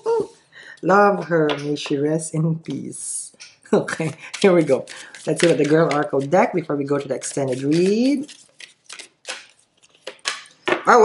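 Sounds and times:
cards shuffling: 4.2s - 10.6s.

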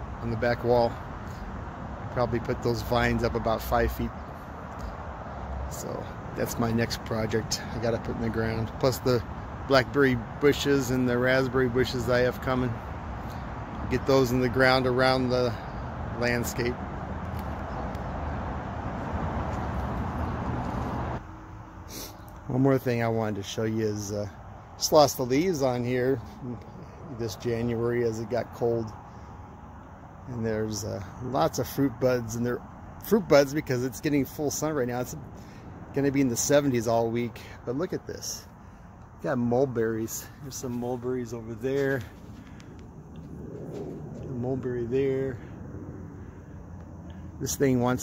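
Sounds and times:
steady rushing background noise: 39.4s - 48.0s.

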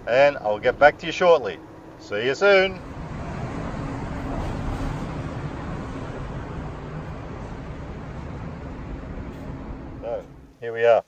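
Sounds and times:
street traffic rush: 0.0s - 10.7s
faint low hum: 0.0s - 10.8s.

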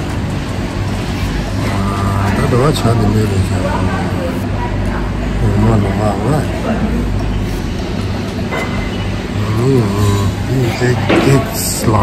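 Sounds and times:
person speaking: 9.3s - 12.0s.

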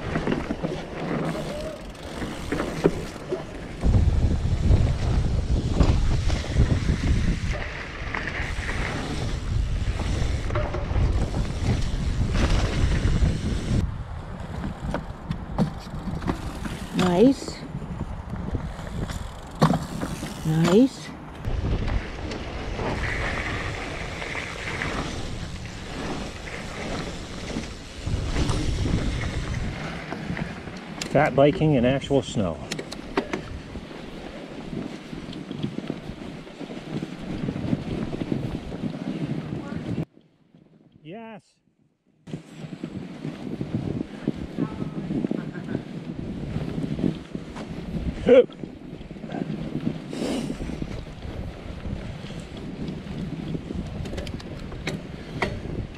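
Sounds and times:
wind noise on microphone: 0.0s - 40.2s, 42.2s - 55.9s
bike tyres rumbling on dirt: 0.0s - 40.8s, 42.3s - 55.9s.

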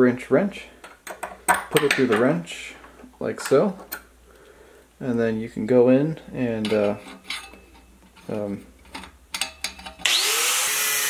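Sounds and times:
angle grinder grinding steel: 10.0s - 11.0s.

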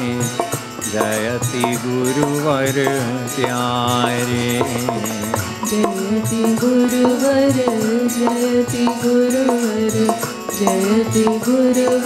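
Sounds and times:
harmonium holding steady tones: 0.0s - 12.0s
man singing a devotional chant: 0.0s - 12.0s.

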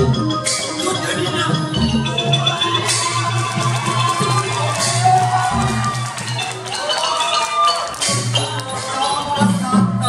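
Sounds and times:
traditional ensemble music: 0.0s - 10.0s.

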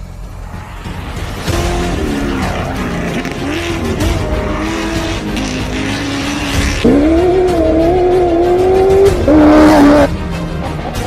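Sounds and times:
truck engine at full throttle: 0.1s - 11.0s.

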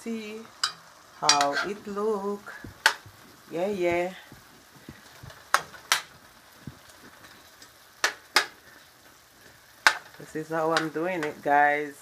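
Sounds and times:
vegetables sizzling in a pan: 0.0s - 12.0s
utensil stirring: 0.6s - 11.5s.

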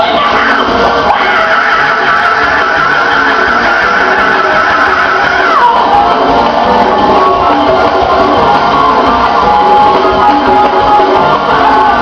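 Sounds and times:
gospel choir and band: 0.0s - 12.0s.

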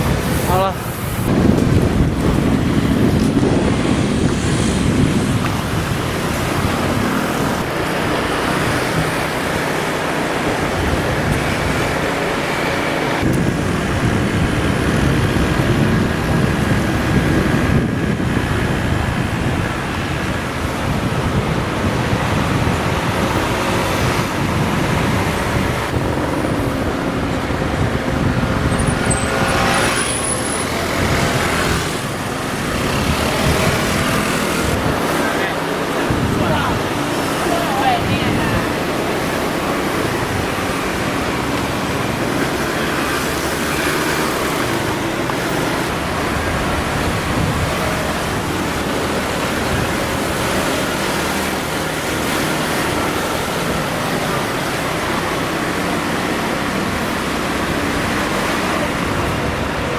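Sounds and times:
road traffic noise: 0.0s - 59.9s.

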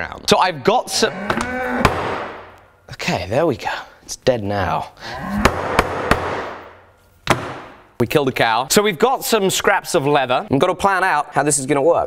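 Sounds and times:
mallet striking leather: 5.4s - 6.7s, 7.3s - 7.8s.

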